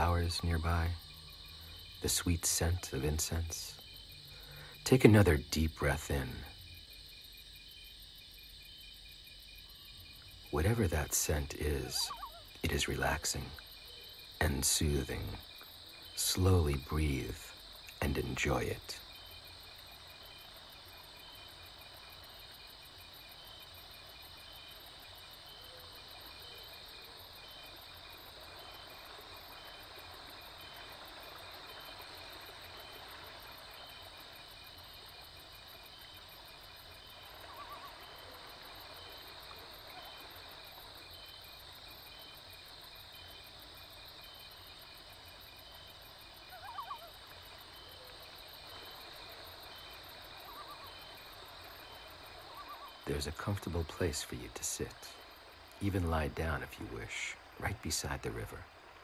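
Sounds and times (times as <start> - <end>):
faint crickets chirping: 0.0 - 59.0
soft steady hiss: 0.0 - 59.0.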